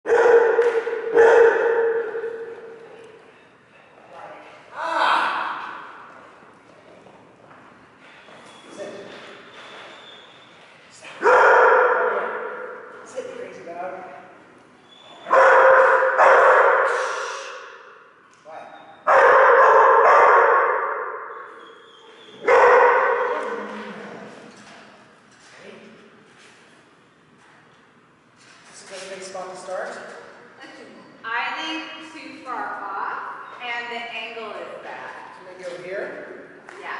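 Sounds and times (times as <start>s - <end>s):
dog barking loudly in a hall: 0.0s - 3.2s, 11.0s - 13.0s, 15.2s - 18.0s, 18.8s - 23.8s.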